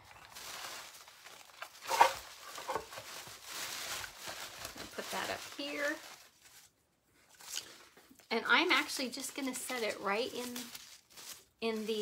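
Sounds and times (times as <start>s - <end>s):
artificial flowers rustling: 0.0s - 12.0s.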